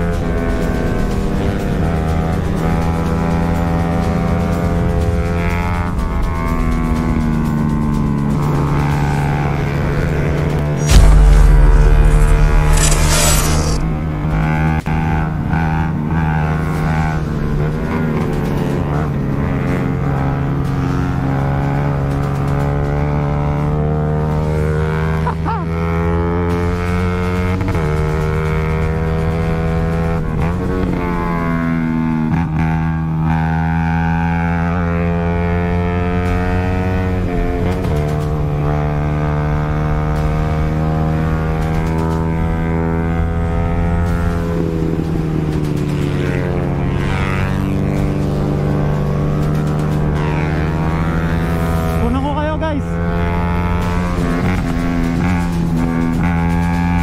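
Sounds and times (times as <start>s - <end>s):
motorcycle engine revving through gears: 0.0s - 52.1s, 52.9s - 57.0s.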